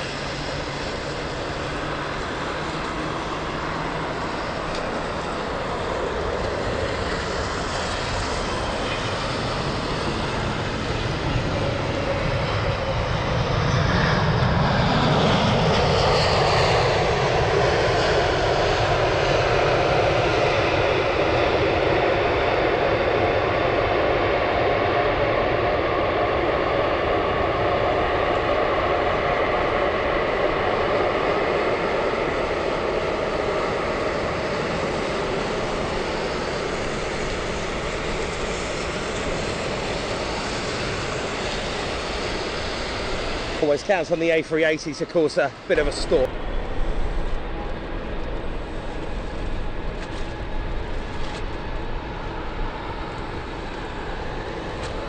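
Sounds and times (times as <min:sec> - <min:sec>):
jet engines at take-off: 0:00.0 - 0:55.0.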